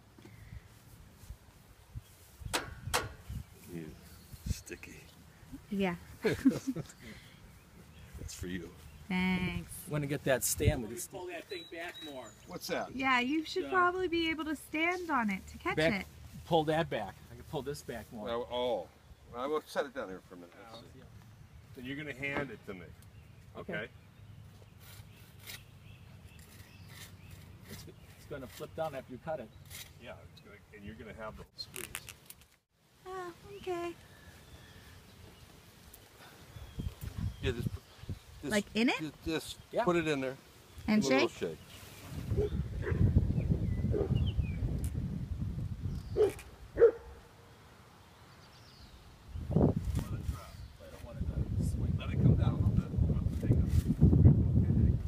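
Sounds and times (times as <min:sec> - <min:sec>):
pruning pole scraping: 0:24.7 - 0:30.2
leafy branch rustling: 0:40.4 - 0:42.5, 0:49.6 - 0:51.1, 0:53.2 - 0:54.2
dog barking: 0:42.4 - 0:43.1, 0:43.9 - 0:44.2, 0:46.2 - 0:47.3.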